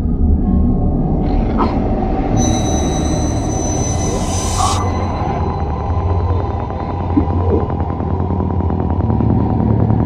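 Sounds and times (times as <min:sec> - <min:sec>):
low rumbling drone: 0:00.0 - 0:10.0
shrill screeching: 0:02.4 - 0:05.3.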